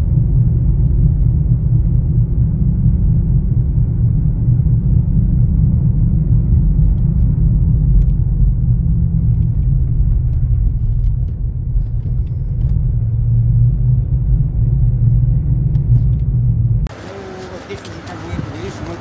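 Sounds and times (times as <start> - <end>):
car driving rumble from inside: 0.0 - 19.0.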